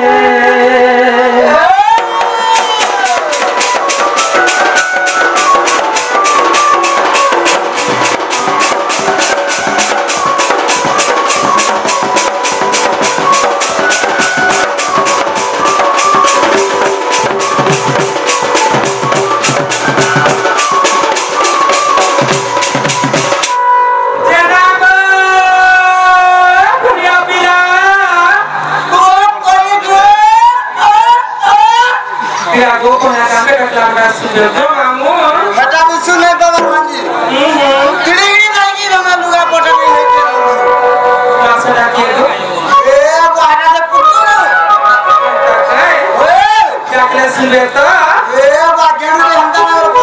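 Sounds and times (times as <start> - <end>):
person singing: 0.0 - 2.2
barrel drum beating: 1.9 - 23.6
folk melody: 2.1 - 24.6, 39.2 - 43.1.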